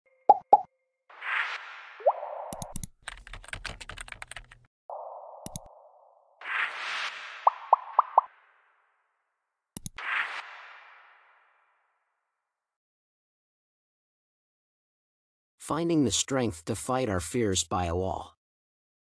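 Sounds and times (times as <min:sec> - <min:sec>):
mouse click: 0:02.5 - 0:02.9, 0:05.4 - 0:05.7, 0:09.8 - 0:10.0
keyboard typing clicks: 0:02.5 - 0:04.6, 0:05.4 - 0:05.7, 0:09.8 - 0:10.0.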